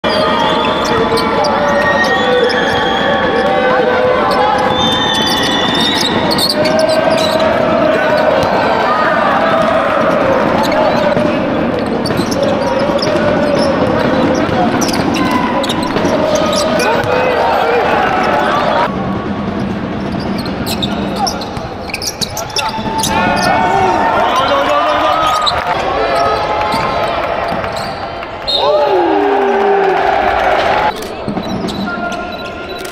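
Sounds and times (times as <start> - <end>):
people calling out: 0.0 - 18.9, 20.7 - 32.8
sneakers squeaking on court: 0.1 - 18.9, 19.5 - 28.6, 31.0 - 32.9
basketball bouncing: 4.0 - 18.8.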